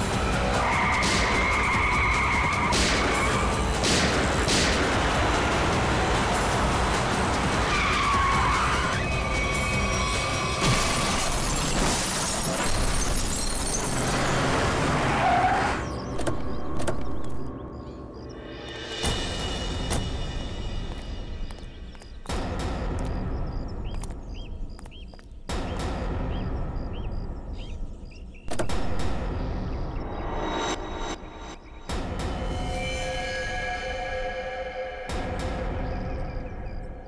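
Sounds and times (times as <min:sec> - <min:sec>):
car crash: 0:10.0 - 0:15.8
glass shattering: 0:10.5 - 0:14.6.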